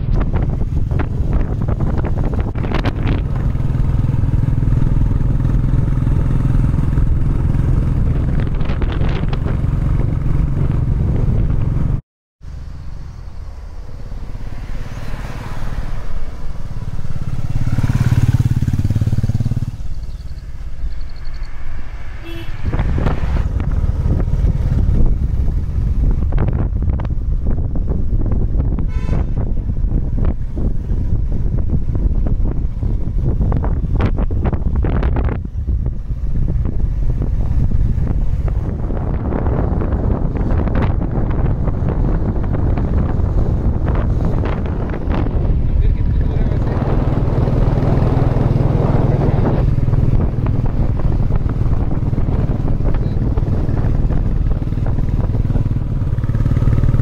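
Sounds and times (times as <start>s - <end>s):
motorcycle engine running: 0.0s - 13.2s, 16.4s - 21.1s, 22.2s - 57.0s.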